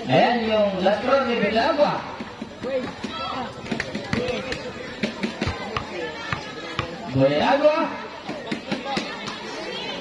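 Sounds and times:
crowd chattering: 0:00.0 - 0:10.0
basketball bouncing on concrete: 0:02.2 - 0:07.3.

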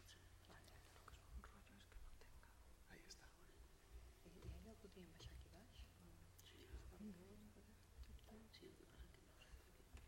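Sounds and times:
faint whispering: 0:00.0 - 0:10.0.

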